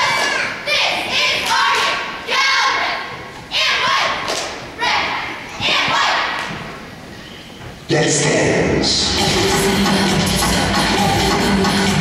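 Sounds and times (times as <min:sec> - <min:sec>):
cheerleaders shouting in unison: 0:00.0 - 0:06.5.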